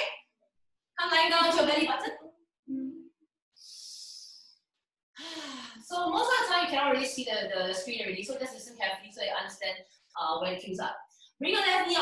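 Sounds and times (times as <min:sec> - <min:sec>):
woman speaking: 0:01.0 - 0:02.1, 0:05.2 - 0:12.0.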